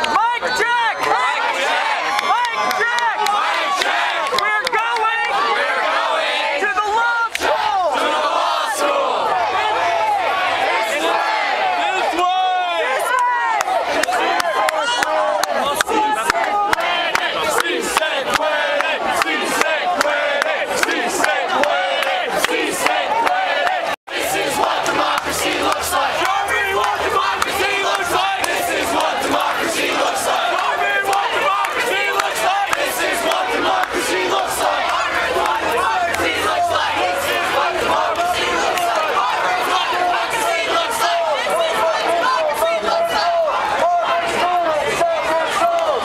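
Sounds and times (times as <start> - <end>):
crowd shouting and chanting: 0.0 - 46.0.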